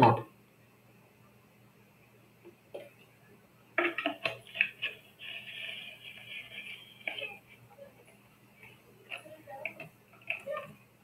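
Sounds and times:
scratchy rustle: 0:04.4 - 0:07.7.

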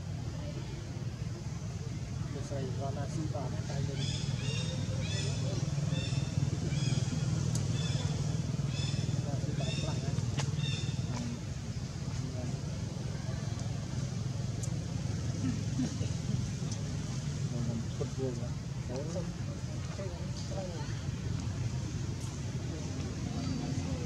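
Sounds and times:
faint murmuring: 0:00.0 - 0:24.0
low engine-like hum: 0:00.0 - 0:24.0.

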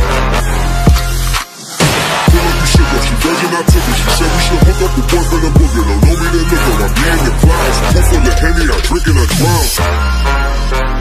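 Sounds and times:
rapping over deep bass: 0:02.3 - 0:10.5.

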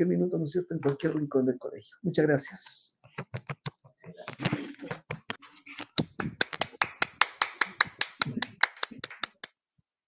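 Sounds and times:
people applauding: 0:06.0 - 0:09.5.

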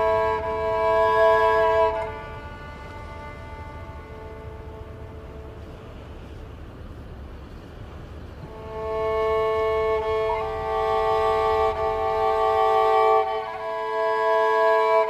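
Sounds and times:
bowed strings playing held notes: 0:00.0 - 0:15.0
low steady rumble: 0:00.0 - 0:15.0.

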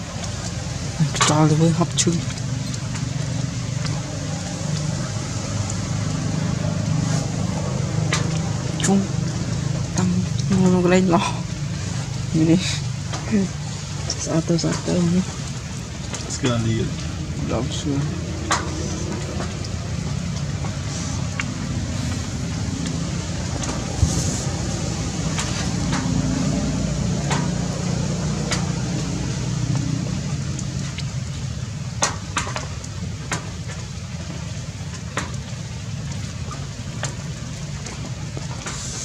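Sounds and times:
vehicle engine rumbling: 0:00.0 - 0:39.0.

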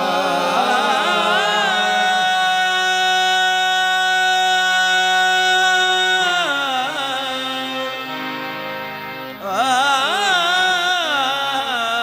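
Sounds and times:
harmonium chord: 0:00.0 - 0:12.0.

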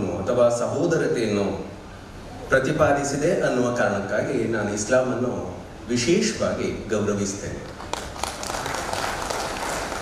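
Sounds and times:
audience applauding: 0:07.8 - 0:10.0.

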